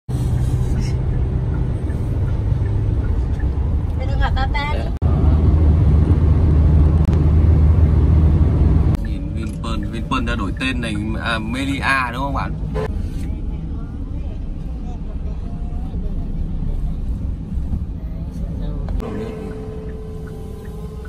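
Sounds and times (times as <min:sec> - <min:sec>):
vehicle road and engine rumble: 0:00.0 - 0:21.0
low steady hum: 0:07.8 - 0:21.0.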